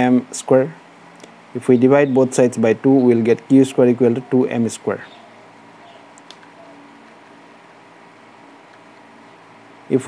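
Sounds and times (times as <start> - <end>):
faint hum: 0.0 - 10.0
steady hiss: 0.0 - 10.0.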